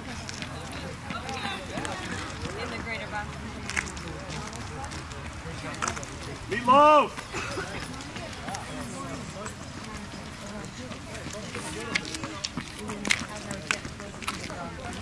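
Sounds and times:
spectators chattering: 0:00.0 - 0:15.0
steps on asphalt: 0:00.0 - 0:15.0.

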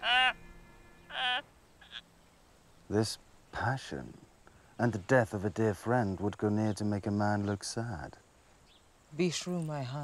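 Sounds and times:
man wailing: 0:00.0 - 0:00.4.

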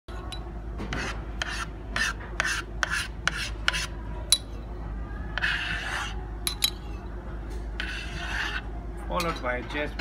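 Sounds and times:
metal spoon scraping: 0:05.4 - 0:07.0, 0:07.8 - 0:09.3.

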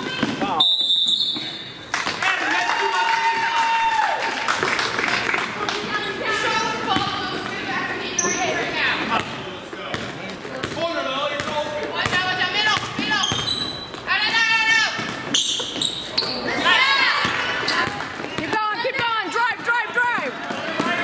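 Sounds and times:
basketball bouncing on hardwood floor: 0:09.2 - 0:10.8.

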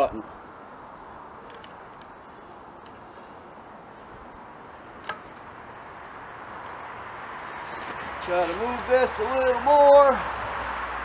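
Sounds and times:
low outdoor noise: 0:00.0 - 0:11.0.

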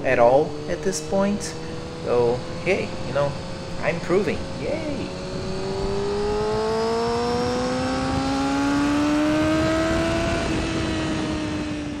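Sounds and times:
motorcycle engine accelerating: 0:00.0 - 0:12.0
wind noise: 0:00.0 - 0:12.0.

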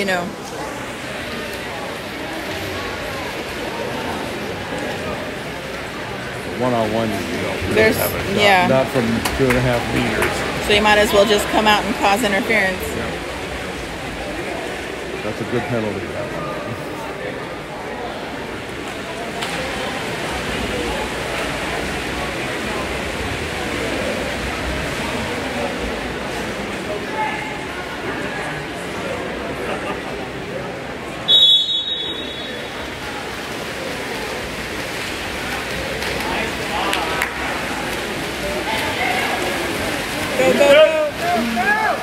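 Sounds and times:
water splashing: 0:00.0 - 0:30.5, 0:31.3 - 0:42.0
voices echoing: 0:00.0 - 0:42.0
referee's whistle blast: 0:31.3 - 0:32.7
people shouting: 0:40.4 - 0:42.0.

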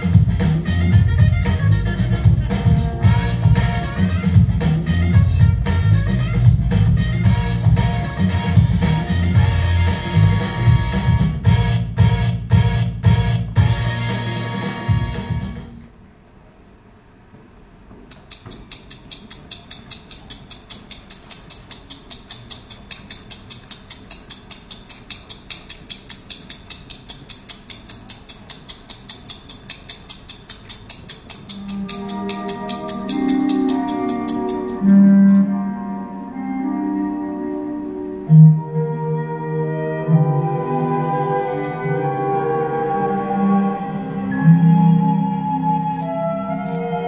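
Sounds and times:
keyboard melody: 0:00.0 - 0:15.7, 0:31.6 - 0:47.0
rapid even ticking: 0:18.1 - 0:35.4.

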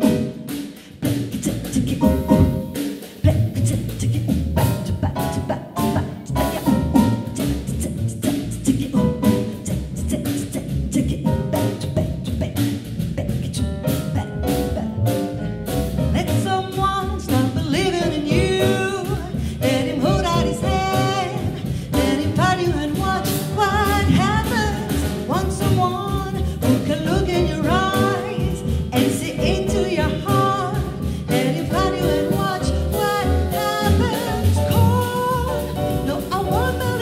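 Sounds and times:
double bass: 0:00.0 - 0:37.0
drum kit: 0:00.0 - 0:37.0
piano: 0:00.0 - 0:37.0
woman singing into a microphone: 0:01.3 - 0:12.6, 0:16.2 - 0:37.0.

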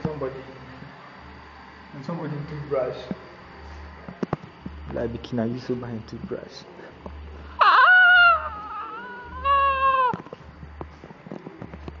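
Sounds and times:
man wailing like a cat: 0:07.6 - 0:10.2.

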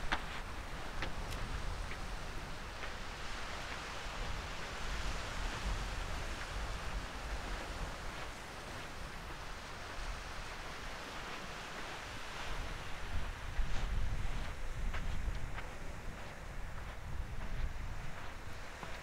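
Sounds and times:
low surf: 0:00.0 - 0:19.0
wind buffeting microphone: 0:00.0 - 0:19.0.

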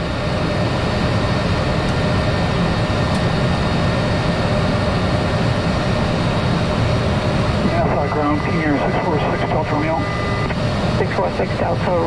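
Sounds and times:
faint steady whine: 0:00.0 - 0:12.0
turboprop engine drone: 0:00.0 - 0:12.0.

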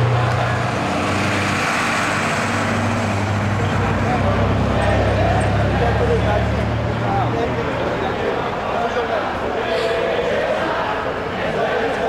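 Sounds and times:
background voices: 0:00.0 - 0:12.0
vehicle engines running: 0:00.0 - 0:12.0.

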